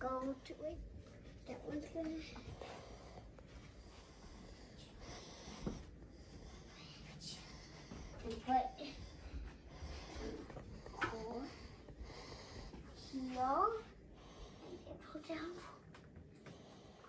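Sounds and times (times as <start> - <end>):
girl speaking: 0.0 - 0.8, 1.4 - 2.5, 8.2 - 9.0, 13.0 - 13.9, 14.8 - 15.8
faint movement noise: 0.0 - 17.0.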